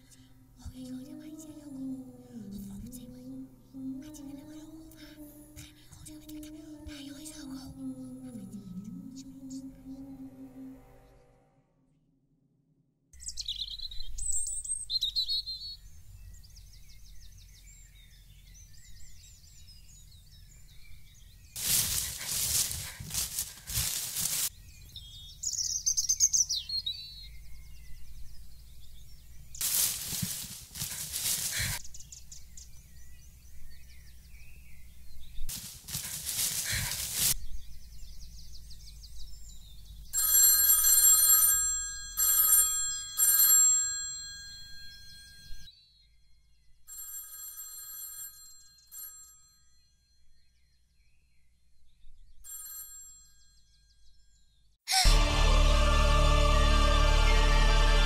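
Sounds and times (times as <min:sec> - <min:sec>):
bursts of hiss-like noise: 0:29.6 - 0:31.8, 0:35.5 - 0:37.4.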